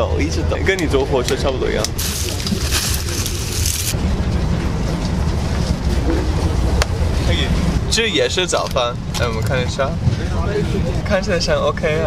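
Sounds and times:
train rumbling: 0:01.0 - 0:12.0.

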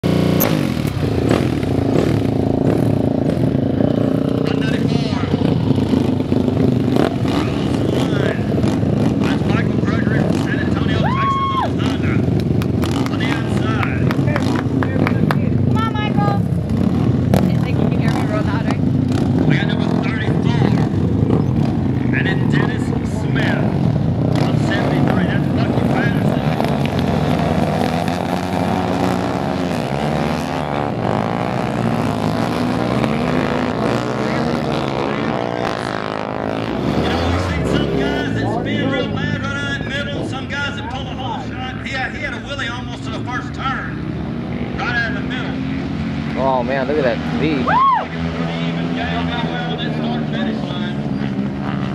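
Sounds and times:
motorcycle engines idling and revving: 0:00.0 - 0:51.9.

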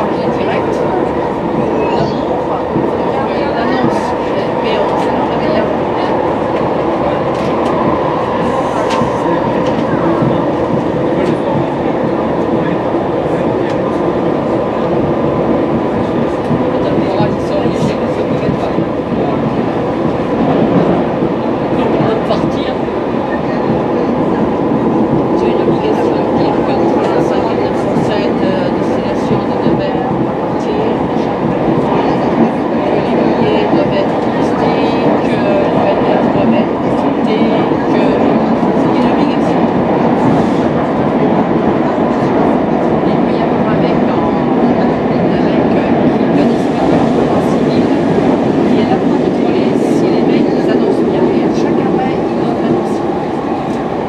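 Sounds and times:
train wheels rumbling on track: 0:00.0 - 0:54.0.

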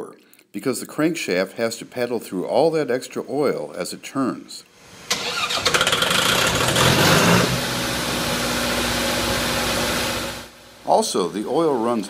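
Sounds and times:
engine starting and idling: 0:05.1 - 0:10.5.

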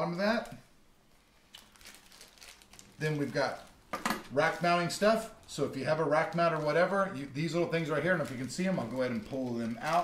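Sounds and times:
plastic bags crinkling: 0:01.4 - 0:10.0.

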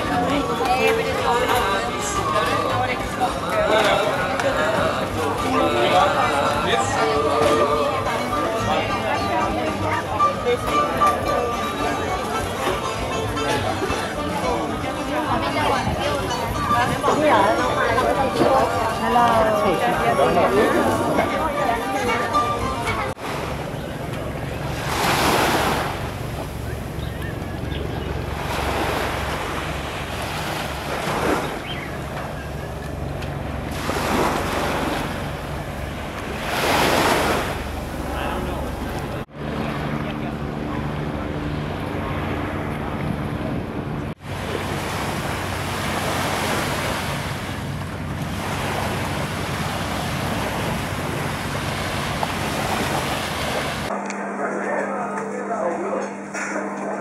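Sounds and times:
surf washing onto beach: 0:23.2 - 0:26.6, 0:33.2 - 0:39.2, 0:44.2 - 0:53.9
wind buffeting microphone: 0:40.5 - 0:53.9.

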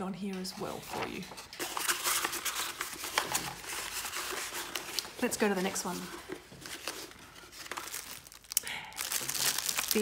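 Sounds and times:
plastic packet crinkling: 0:06.6 - 0:10.0.

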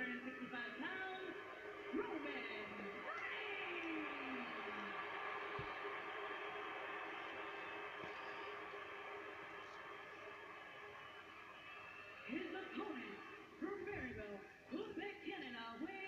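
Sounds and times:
announcer speaking: 0:00.0 - 0:05.0, 0:12.3 - 0:16.0
arena crowd noise: 0:00.0 - 0:16.0.

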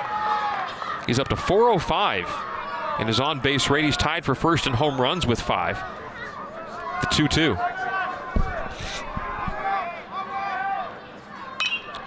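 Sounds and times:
crowd chatter: 0:00.0 - 0:12.0
metal bat ping: 0:11.6 - 0:12.0.

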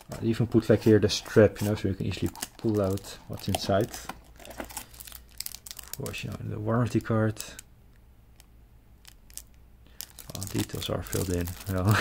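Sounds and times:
plastic sleeve crinkling: 0:00.0 - 0:07.6, 0:08.4 - 0:12.0.

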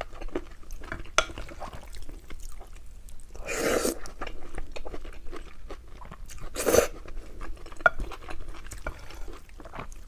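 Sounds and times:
person slurping noodles: 0:03.4 - 0:04.1, 0:06.6 - 0:07.0.

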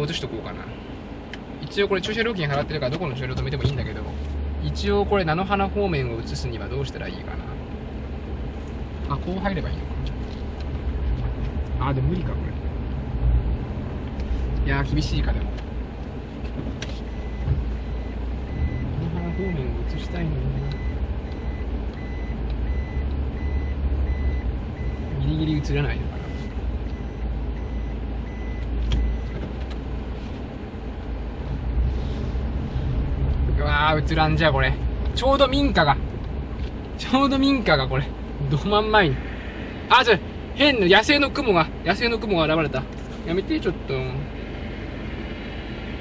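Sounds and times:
car engine and tyres rumbling: 0:00.0 - 0:46.0
reverse warning beeper: 0:17.1 - 0:25.3, 0:26.1 - 0:29.4.

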